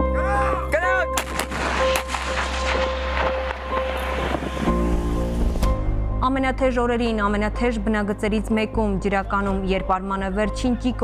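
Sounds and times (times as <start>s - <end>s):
background music: 0.0s - 11.0s
artillery blasts: 1.2s - 4.7s.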